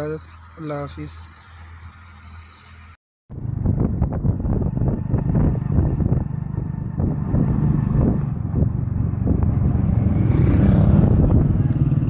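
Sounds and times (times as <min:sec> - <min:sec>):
passing traffic: 0:00.0 - 0:12.0
motorcycle engine running: 0:03.3 - 0:12.0
wind noise: 0:03.3 - 0:12.0.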